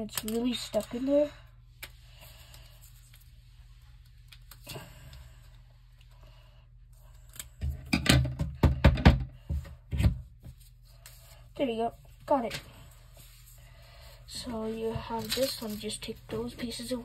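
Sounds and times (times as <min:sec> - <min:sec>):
paper handling: 0:14.6 - 0:17.0.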